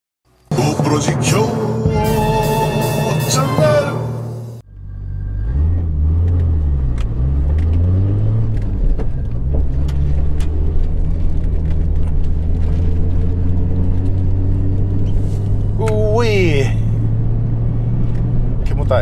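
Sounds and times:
short music: 0.5s - 5.1s
car engine droning in cabin: 3.7s - 19.0s.

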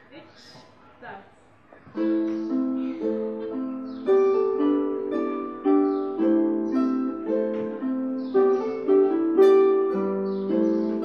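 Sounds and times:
harps plucked in duet: 1.9s - 11.0s.

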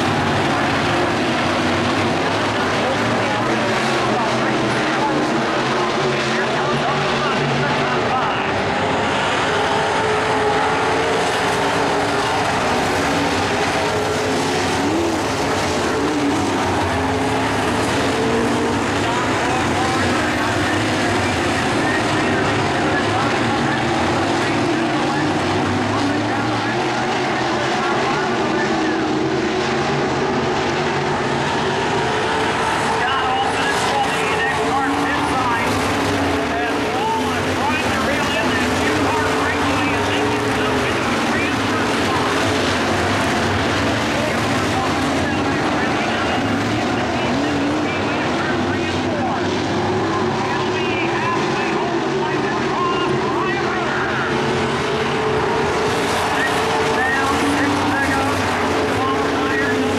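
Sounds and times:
race car engines at high revs: 0.0s - 59.9s.

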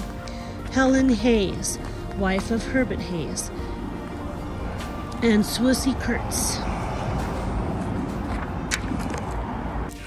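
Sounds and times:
traffic rumble and hiss: 0.0s - 10.0s.

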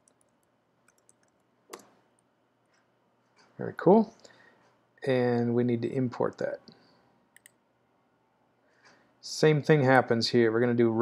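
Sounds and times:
typing on computer keyboard: 0.0s - 1.9s.

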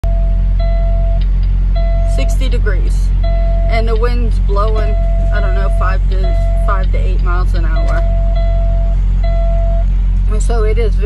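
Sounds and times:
diesel truck engine idling: 0.0s - 11.0s.

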